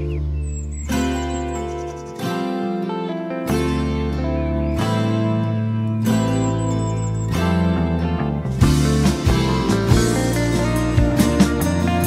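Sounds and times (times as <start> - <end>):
strummed acoustic guitar: 0.0 - 12.0
held low notes: 3.6 - 12.0.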